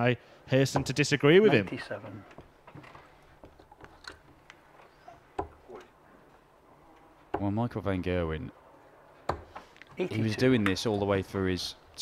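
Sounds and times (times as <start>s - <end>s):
dart striking dartboard: 9.3s - 9.6s.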